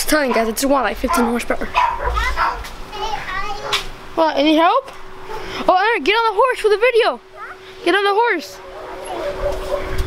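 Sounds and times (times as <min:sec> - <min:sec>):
children talking: 0:00.0 - 0:10.0.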